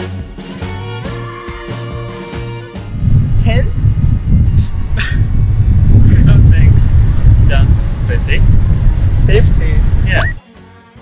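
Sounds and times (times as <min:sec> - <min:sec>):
wind buffeting microphone: 0:02.8 - 0:10.4.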